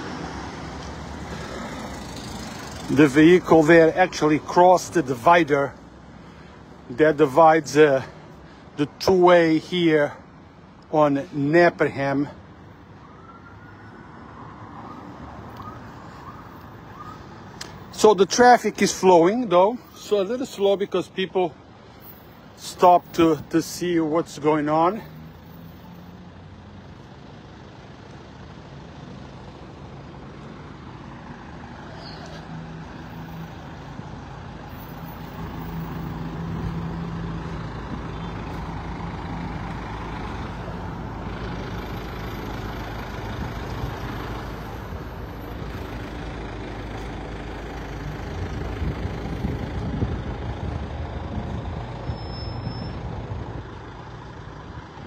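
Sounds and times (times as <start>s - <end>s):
street traffic passing: 0.0s - 55.0s.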